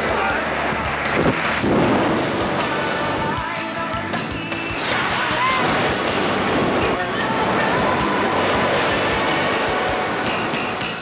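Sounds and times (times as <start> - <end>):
wind buffeting microphone: 0.7 - 3.4.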